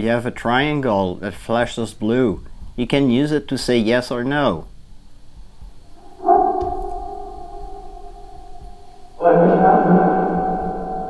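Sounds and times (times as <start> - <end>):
ringing chime-like tone: 6.0 - 11.0.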